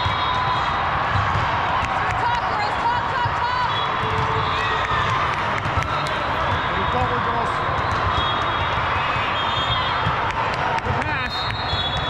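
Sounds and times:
crowd chatter: 0.0s - 12.0s
players' voices: 1.1s - 9.1s, 9.8s - 12.0s.

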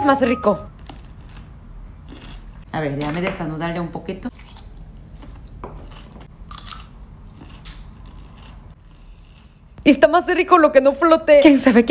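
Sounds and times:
chewing crisp cucumber: 0.8s - 2.6s, 4.3s - 9.5s.

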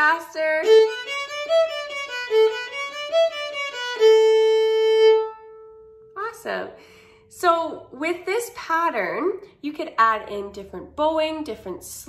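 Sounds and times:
solo violin playing scale: 0.0s - 6.0s.

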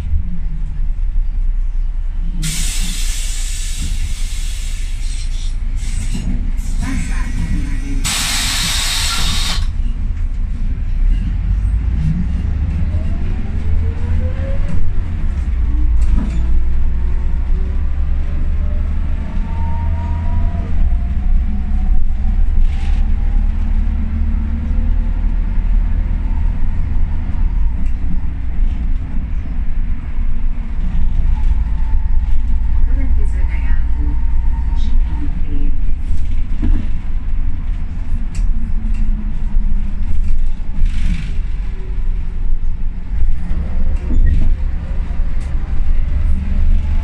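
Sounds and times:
diesel engine droning: 0.0s - 47.0s
compressed air hiss: 8.0s - 9.7s.

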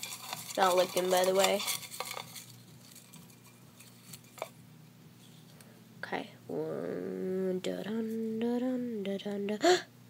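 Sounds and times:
paper slips rustling in metal tin: 0.0s - 4.5s.

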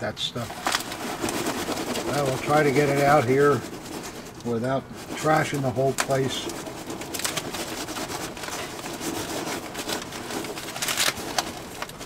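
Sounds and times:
bubble wrap crinkling: 0.0s - 12.0s
packing peanuts rustling: 0.0s - 12.0s.

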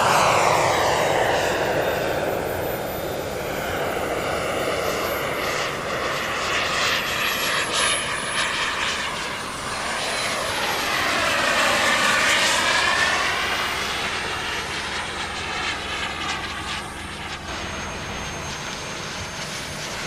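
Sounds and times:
model jet turbine whine: 0.0s - 20.0s.

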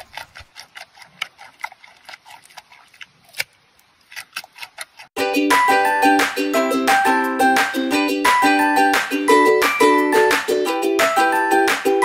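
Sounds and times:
panda crunching carrot: 0.0s - 5.2s
bright ukulele music: 5.2s - 12.0s.

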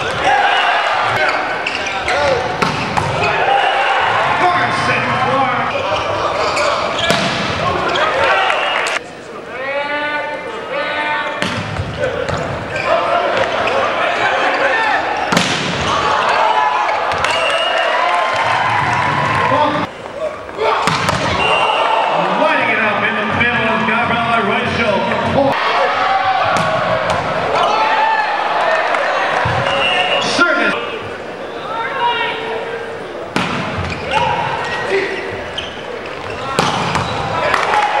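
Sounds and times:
echoing voices: 0.0s - 17.2s
volleyball being struck: 26.5s - 27.3s.

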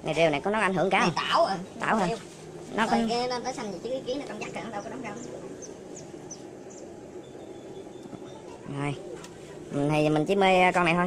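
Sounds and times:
steady low hum: 0.0s - 11.0s
high bird chirps: 4.7s - 8.6s.

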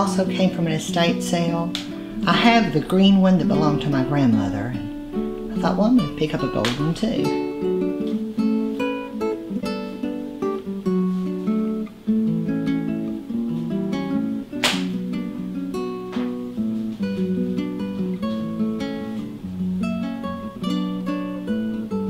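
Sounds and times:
acoustic guitar picking: 0.0s - 22.0s
guitar strum: 0.0s - 22.0s.

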